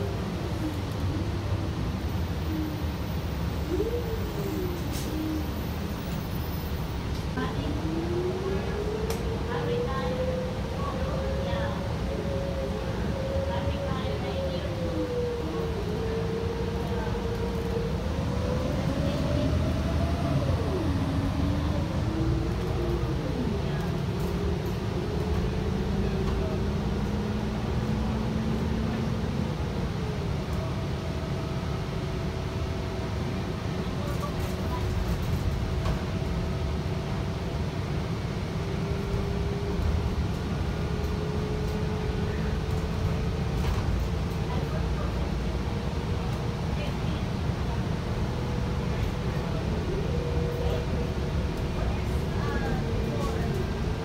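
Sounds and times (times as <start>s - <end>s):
rising engine whine: 0.0s - 46.7s, 47.5s - 54.0s
bus engine drone: 0.0s - 54.0s
road noise: 0.0s - 54.0s.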